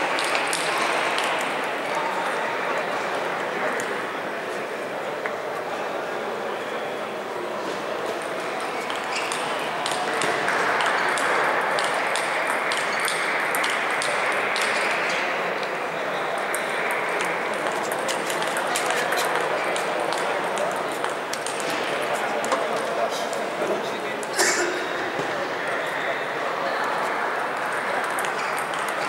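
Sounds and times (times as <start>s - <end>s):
din of many voices: 0.0s - 29.0s
table tennis balls clicking: 8.2s - 15.1s, 16.4s - 21.8s, 27.5s - 29.0s.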